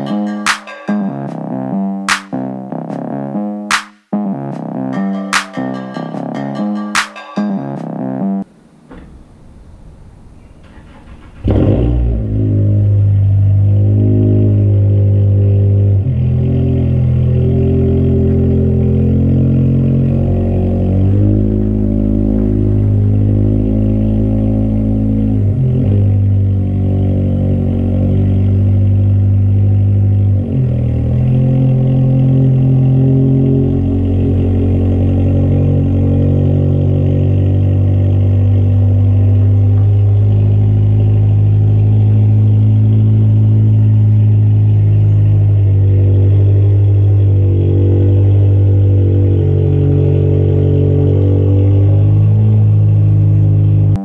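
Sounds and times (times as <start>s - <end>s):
car engine running: 7.8s - 54.0s.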